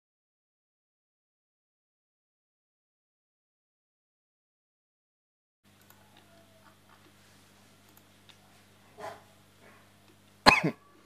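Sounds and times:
faint low hum: 5.7 - 11.0
person coughing: 10.4 - 10.9.

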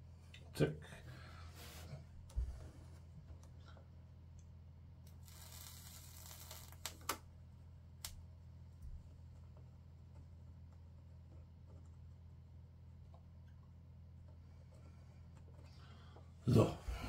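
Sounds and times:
steady low hum: 0.0 - 17.0
soldering iron hiss: 5.1 - 6.9.

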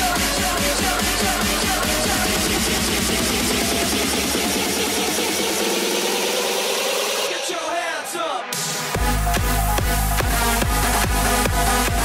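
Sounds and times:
electronic dance music build-up: 0.0 - 12.0.

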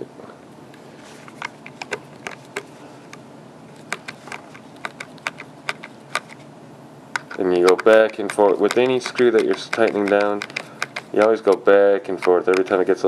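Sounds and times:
faint steady hum: 0.0 - 13.0
screwdriver clicking in plastic: 7.2 - 12.8.

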